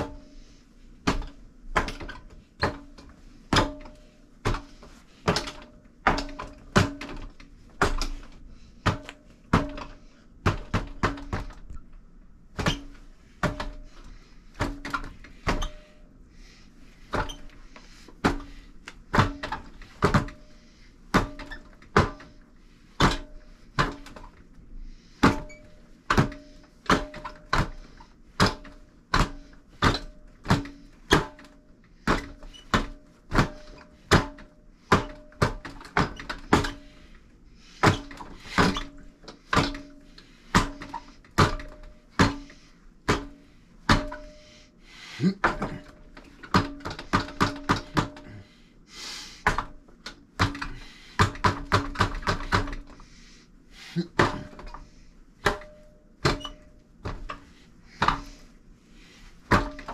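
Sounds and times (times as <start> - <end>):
hands striking wooden dummy: 1.0 - 11.7, 12.6 - 15.8, 17.1 - 20.5, 21.1 - 22.3, 23.0 - 24.4, 25.2 - 37.0, 37.8 - 44.4, 45.3 - 48.4, 49.4 - 53.0, 54.0 - 58.4, 59.5 - 59.9.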